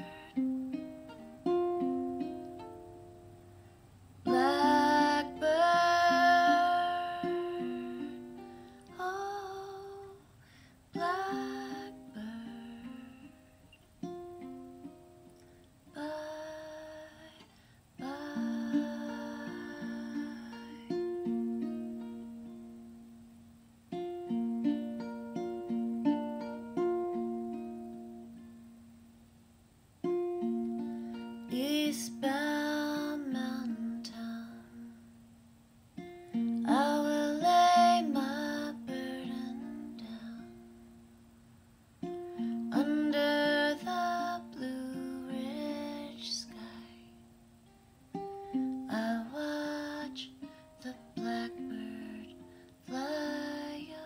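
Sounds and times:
woman singing: 0:00.0 - 0:00.5, 0:04.2 - 0:13.4, 0:15.9 - 0:21.0, 0:31.4 - 0:35.1, 0:36.5 - 0:40.8, 0:42.5 - 0:47.2, 0:48.6 - 0:54.0
plucked string chords: 0:00.0 - 0:10.2.

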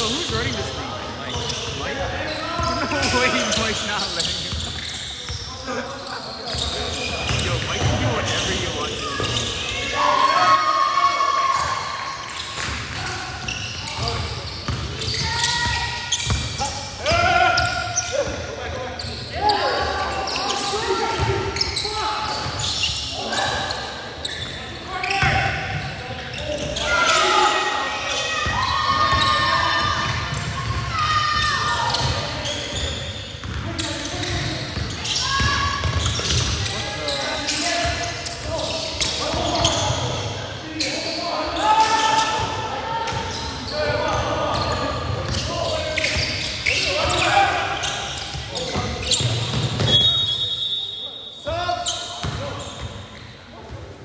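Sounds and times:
voices talking and calling out: 0:00.0 - 0:54.0.

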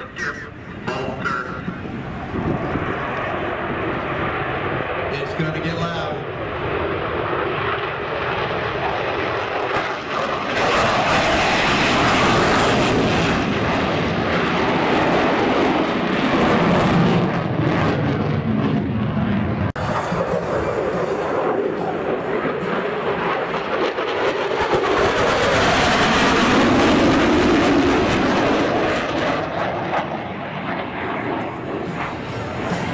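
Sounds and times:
jet engines roaring past: 0:00.0 - 0:32.9.

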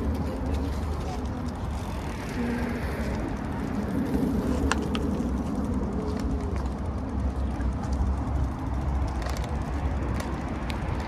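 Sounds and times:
city street rumble: 0:00.0 - 0:11.0.

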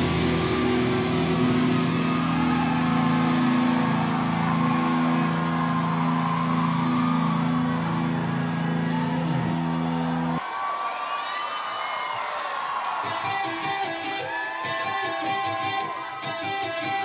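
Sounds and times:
electric guitars ringing chord: 0:00.0 - 0:08.6.

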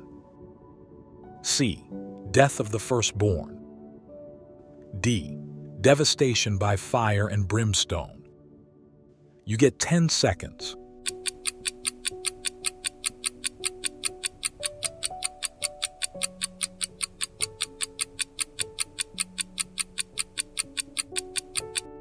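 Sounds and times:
soft background music of chords: 0:00.0 - 0:22.0
clock ticking quickly: 0:11.0 - 0:22.0.

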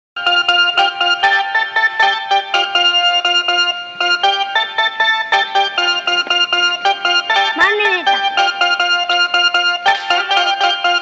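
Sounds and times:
bright melody of quick notes: 0:00.2 - 0:11.0.

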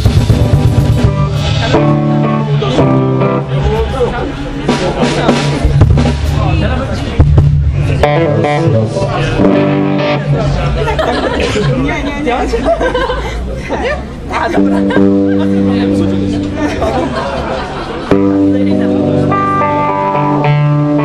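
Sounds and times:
live band playing: 0:00.0 - 0:12.8, 0:13.4 - 0:21.0.

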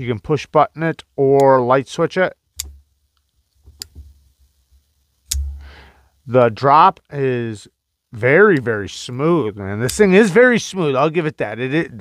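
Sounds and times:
soft hiss: 0:00.0 - 0:12.0.

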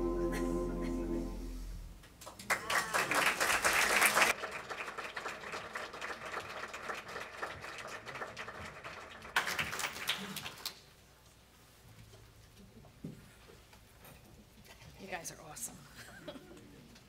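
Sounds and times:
audience applauding: 0:02.3 - 0:10.8.

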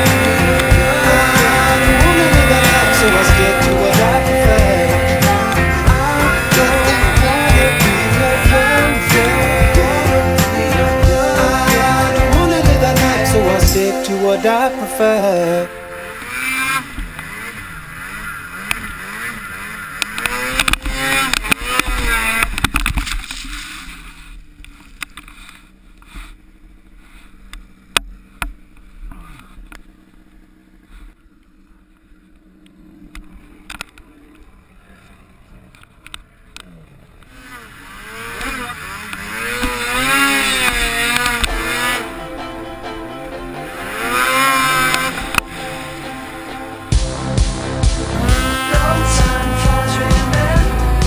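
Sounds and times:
snowmobile engine revving: 0:00.0 - 0:26.4, 0:32.2 - 0:51.0.

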